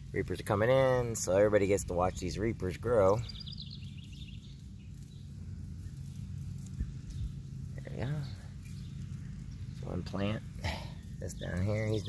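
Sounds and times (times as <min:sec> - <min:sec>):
man talking: 0:00.0 - 0:03.3, 0:07.8 - 0:08.5, 0:09.8 - 0:12.0
steady low hum: 0:00.0 - 0:12.0
bird chirping: 0:00.1 - 0:12.0.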